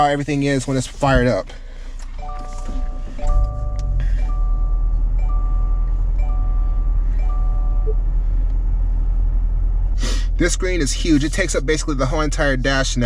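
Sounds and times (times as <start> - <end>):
car engine starting and idling: 0.0 - 13.0
dashboard warning chime: 0.8 - 8.4.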